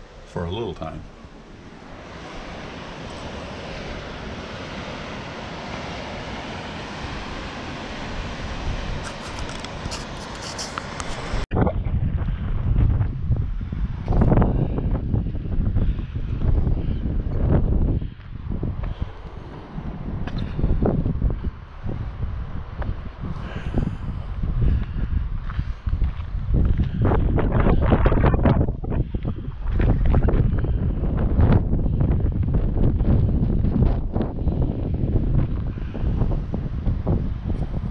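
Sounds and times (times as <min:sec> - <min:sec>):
steady rushing noise: 0:00.0 - 0:37.9
wind buffeting microphone: 0:00.0 - 0:37.9.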